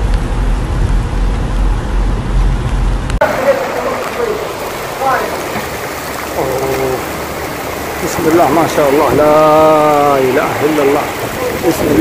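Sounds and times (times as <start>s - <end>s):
heavy rain pouring: 0.0s - 12.0s
person's voice: 6.3s - 7.1s.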